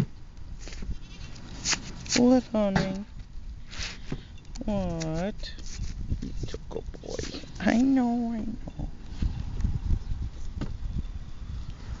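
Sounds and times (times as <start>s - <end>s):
scratchy rustle: 0.6s - 2.4s, 4.9s - 8.0s.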